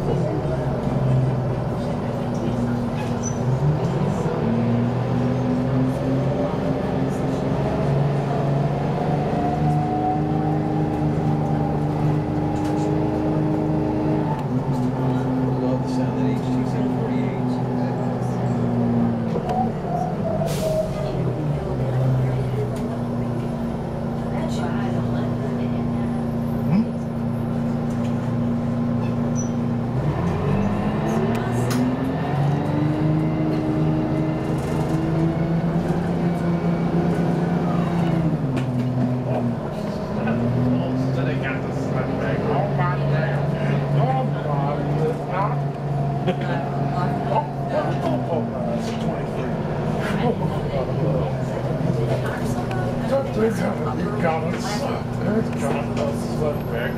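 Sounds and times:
bus diesel engine droning: 0:00.0 - 0:56.9.

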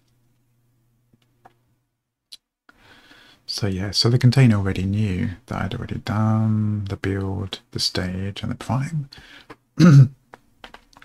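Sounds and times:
man clearing his throat: 0:09.8 - 0:10.2.

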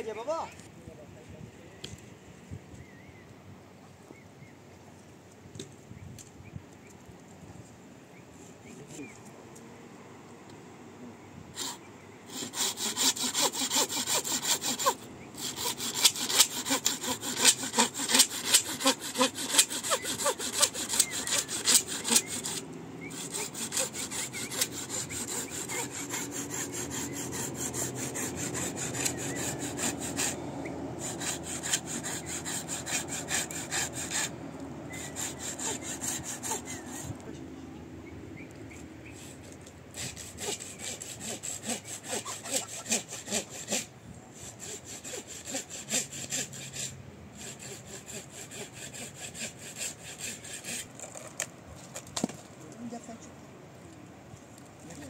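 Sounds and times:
hand saw cutting log: 0:11.6 - 0:37.3, 0:39.1 - 0:52.5.

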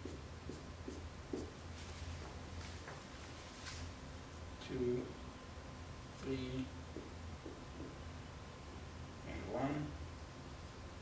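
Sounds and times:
marker strokes on whiteboard: 0:00.0 - 0:03.0
low room hum: 0:00.0 - 0:11.0.

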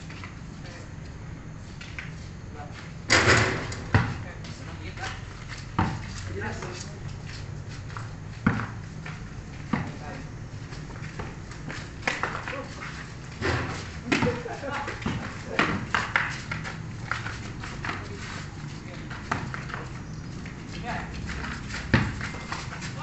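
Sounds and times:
ball bouncing on concrete: 0:03.7 - 0:04.2, 0:05.0 - 0:06.8, 0:07.9 - 0:10.1, 0:10.8 - 0:23.0.

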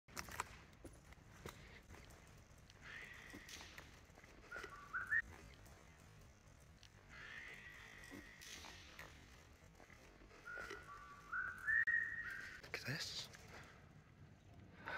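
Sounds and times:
high whistling notes: 0:04.5 - 0:05.3, 0:10.4 - 0:12.6.

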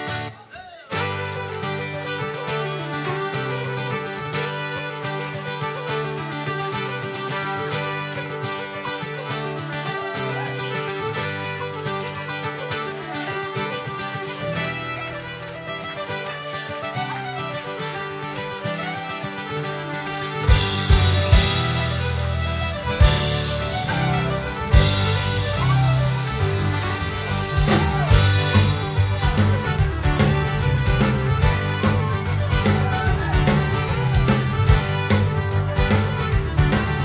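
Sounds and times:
fiddle melody: 0:00.0 - 0:37.0
strummed acoustic guitar: 0:00.0 - 0:37.0
whistle melody: 0:20.5 - 0:37.0.

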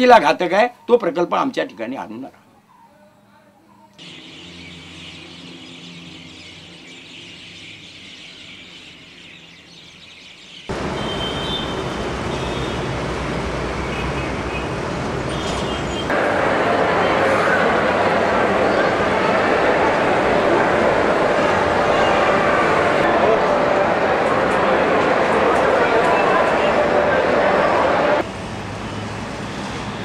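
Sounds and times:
birds chirping: 0:00.0 - 0:13.0, 0:13.7 - 0:16.2
traffic noise: 0:03.9 - 0:30.0
indoor crowd hubbub: 0:15.2 - 0:28.3.

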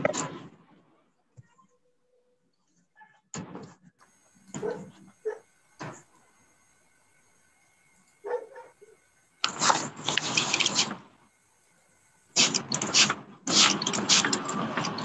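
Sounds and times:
harsh noisy microphone bursts: 0:09.4 - 0:11.3, 0:12.3 - 0:15.0.

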